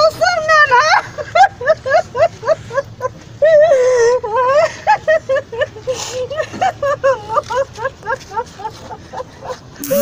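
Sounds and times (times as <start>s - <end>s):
woman sobbing: 0.4s - 10.0s.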